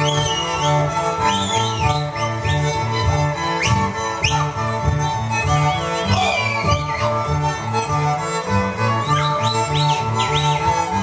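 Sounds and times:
folk string band music: 0.0s - 11.0s.

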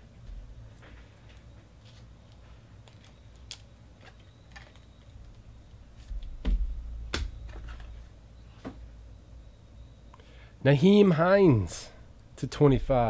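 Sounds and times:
louder knocks: 6.4s - 7.6s.

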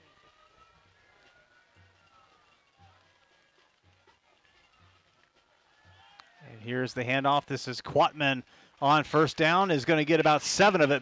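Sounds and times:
faint stadium ambience: 0.0s - 11.0s.

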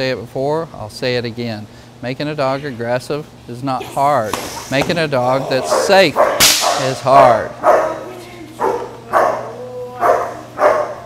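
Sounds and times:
dog barking: 5.6s - 11.0s.

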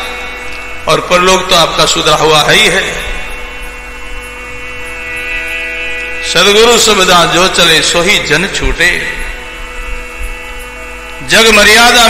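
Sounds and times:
sustained musical drone chord: 0.0s - 12.0s.

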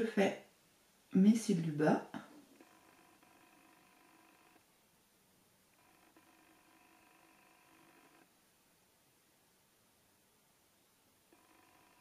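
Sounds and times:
faint multi-pitched hum: 0.4s - 12.0s.

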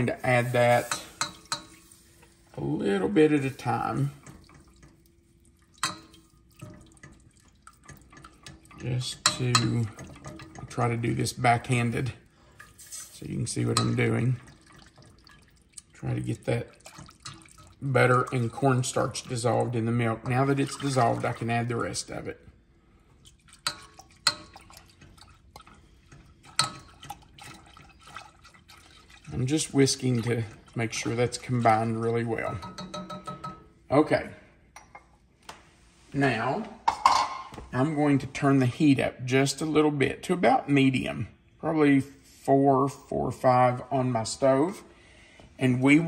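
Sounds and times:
whisk stirring: 0.0s - 22.3s, 23.3s - 33.6s
milk pouring into saucepan: 0.0s - 33.7s.

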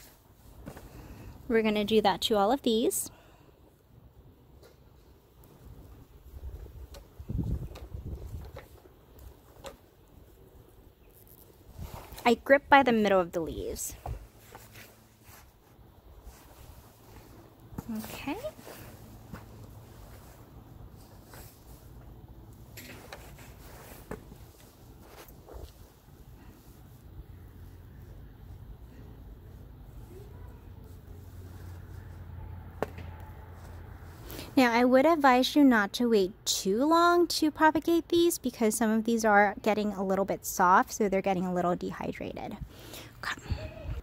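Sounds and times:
leafy stems rustling: 5.8s - 32.3s
low rumble of handling: 13.9s - 34.3s.

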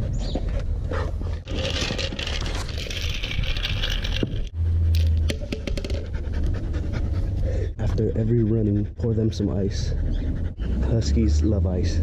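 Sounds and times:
ice cubes rattling in cup: 1.5s - 4.5s
dog panting: 6.0s - 11.9s.

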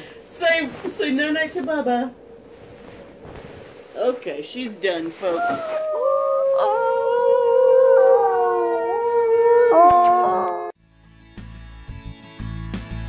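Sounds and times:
long loud howl: 5.3s - 10.8s.

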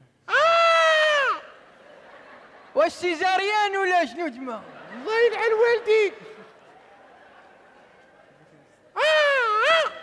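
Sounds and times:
person's high-pitched cry: 0.3s - 1.5s, 9.0s - 10.0s.

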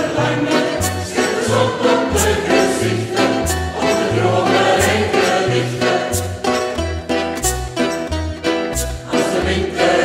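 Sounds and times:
large choir singing: 0.0s - 6.8s, 8.8s - 10.0s
bright percussive accent: 0.0s - 10.0s.

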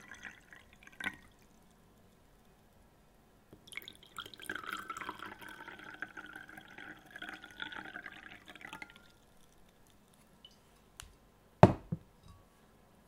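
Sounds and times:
water pouring into a glass: 0.0s - 2.2s, 3.6s - 10.6s.

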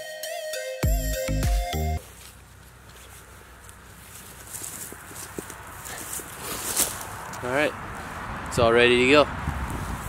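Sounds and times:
dry leaves rustling and crackling: 2.0s - 7.6s.

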